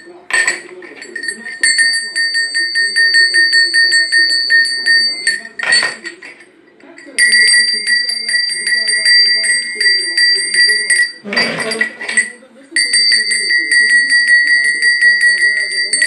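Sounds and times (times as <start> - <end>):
hand bell ringing: 0.0 - 16.0.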